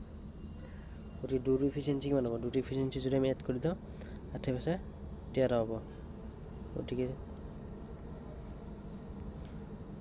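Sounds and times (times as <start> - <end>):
cricket chirping: 0.0 - 10.0
low steady hum: 0.0 - 10.0.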